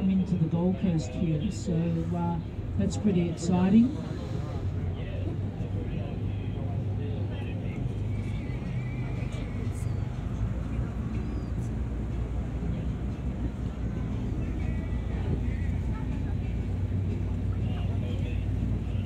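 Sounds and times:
ferry engine humming: 0:00.0 - 0:19.0.

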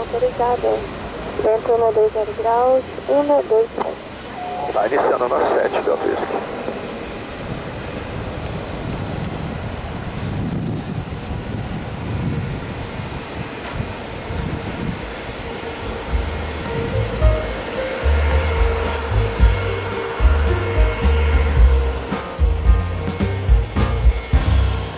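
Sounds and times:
jet engine rushing: 0:00.0 - 0:24.9
music with heavy drum beat: 0:15.6 - 0:24.9.

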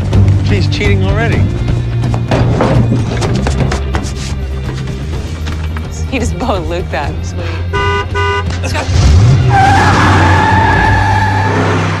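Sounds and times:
car tyres squealing: 0:07.8 - 0:12.0.

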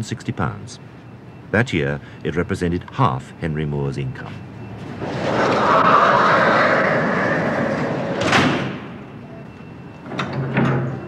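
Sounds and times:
heavy object rolling on wheels: 0:04.6 - 0:11.0.

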